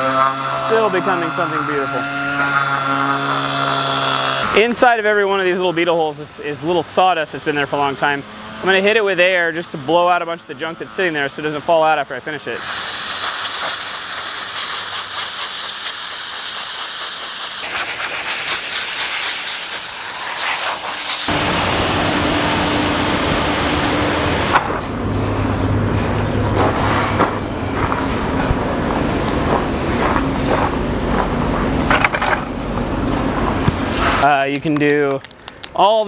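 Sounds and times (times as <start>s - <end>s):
compressed air blow gun hissing: 12.6s - 21.4s
low rumbling background noise: 21.3s - 35.3s.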